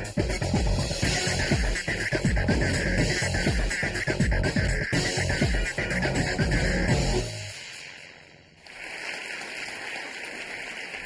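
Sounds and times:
electronic theme music: 0.0 - 8.2
audience applause: 8.6 - 11.0.

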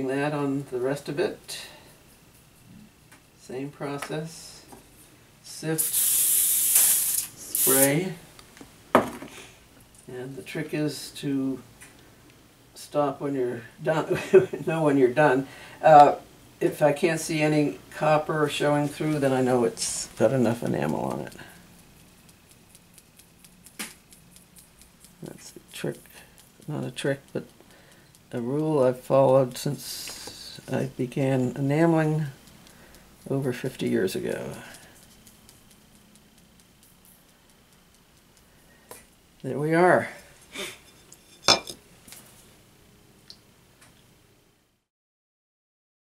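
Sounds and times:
handling of metal dish and cup: 40.8 - 41.8
object clinking on table: 40.9 - 41.8.

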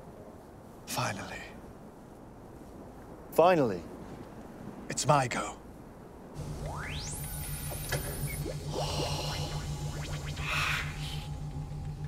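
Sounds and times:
low pulsing hum: 6.4 - 12.0
rising electronic sweep: 6.4 - 12.0
whooshing swells: 6.4 - 12.0.

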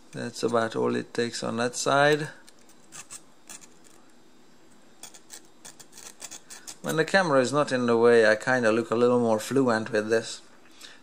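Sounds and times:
hand file scraping metal: 2.9 - 3.8, 5.0 - 7.1.

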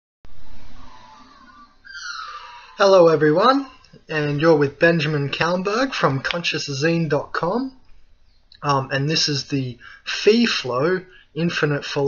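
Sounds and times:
falling squeak-like tone: 0.3 - 3.8.

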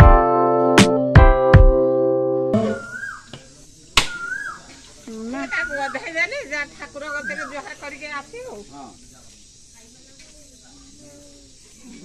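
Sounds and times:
steady high hiss: 2.0 - 12.0
people talking: 2.6 - 12.0.

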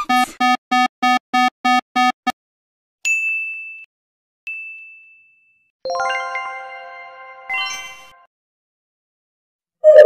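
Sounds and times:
high bell-like dings: 4.5 - 5.7
chiming musical sound: 4.5 - 8.2.

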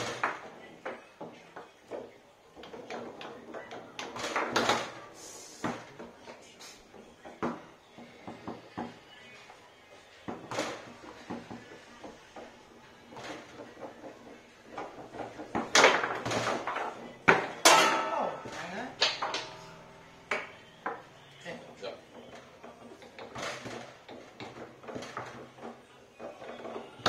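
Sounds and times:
foosball ball clacking: 0.0 - 27.0.

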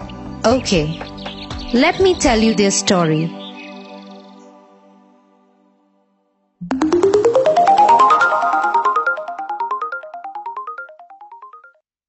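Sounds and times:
rapid ringing notes climbing in pitch: 6.6 - 11.7.

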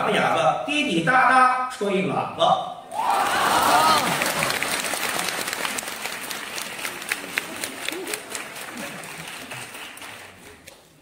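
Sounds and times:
audience applauding: 3.0 - 11.0.

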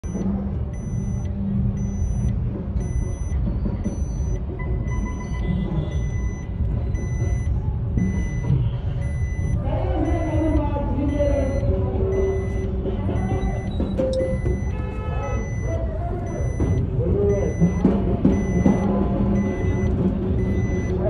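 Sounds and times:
electronic beeper beeping: 0.0 - 21.0.

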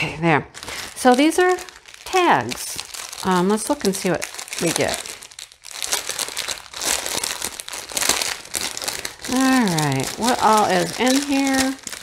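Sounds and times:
plastic bag crinkling: 0.5 - 12.0.

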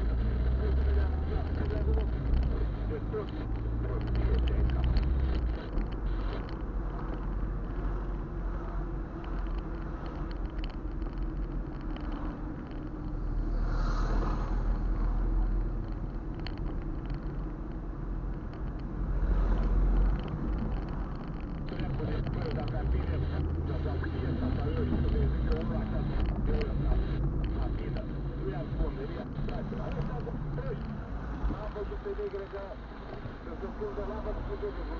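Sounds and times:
car engine and tyre rumble: 0.0 - 34.9.

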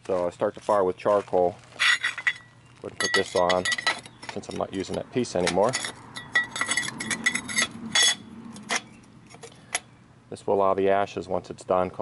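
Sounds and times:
steel plate scraping firebrick: 1.7 - 9.8
sharp metallic clinks: 1.8 - 9.9.

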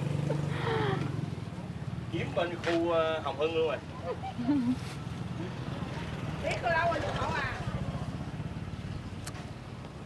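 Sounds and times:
small engine idling: 0.0 - 2.4.

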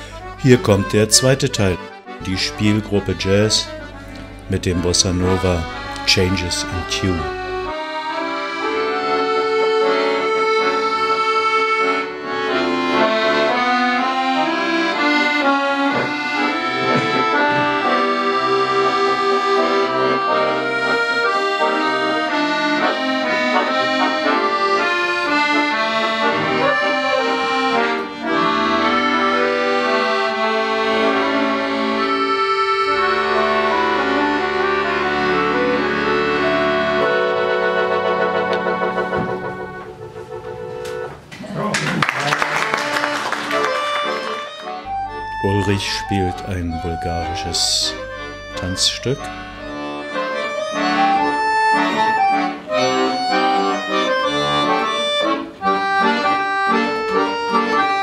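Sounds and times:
accordion ensemble playing bossa nova: 0.0 - 41.4, 42.3 - 58.0.

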